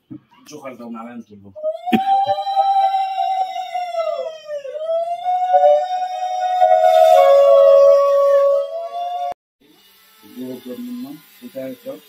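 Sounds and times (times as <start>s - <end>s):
conch shells blown: 5.5s - 8.5s.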